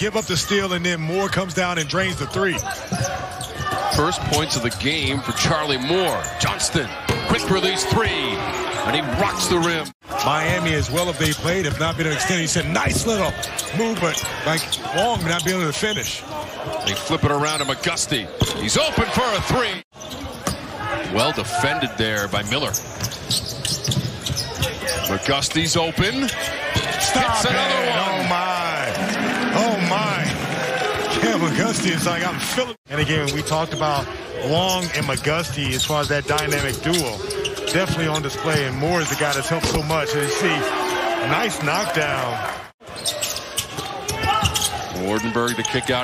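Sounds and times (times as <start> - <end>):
arena crowd noise: 0.0 - 46.0.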